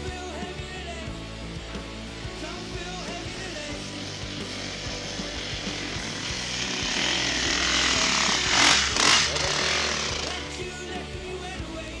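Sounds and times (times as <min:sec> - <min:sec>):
rock music: 0:00.0 - 0:12.0
dirt bike engine revving: 0:03.6 - 0:10.6.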